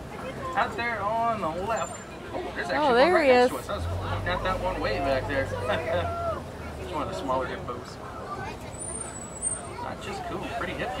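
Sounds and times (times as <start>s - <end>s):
passengers murmuring: 0.0s - 11.0s.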